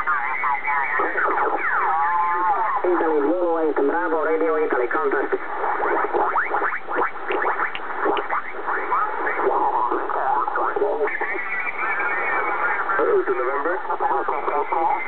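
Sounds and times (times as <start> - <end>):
off-tune radio voices sliding in pitch: 0.0 - 15.0
radio band hiss: 0.0 - 15.0.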